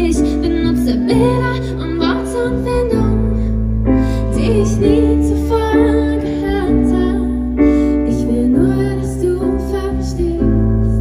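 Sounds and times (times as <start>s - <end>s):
piano chords: 0.0s - 11.0s
woman singing: 0.0s - 11.0s.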